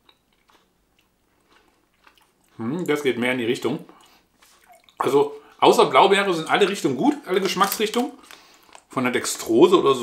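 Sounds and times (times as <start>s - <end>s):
chewing gummy candy: 0.0s - 5.6s, 6.6s - 9.5s.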